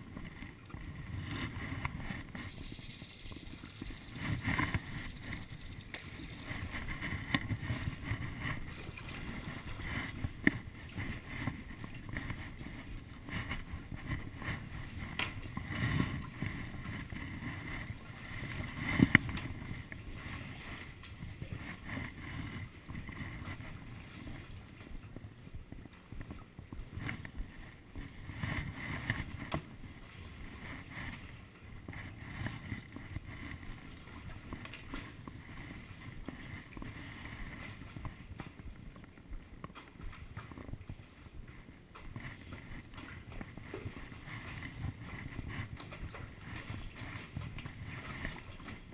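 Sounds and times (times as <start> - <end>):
paddle strokes in water: 0.0 - 48.9
water sloshing: 0.2 - 25.3.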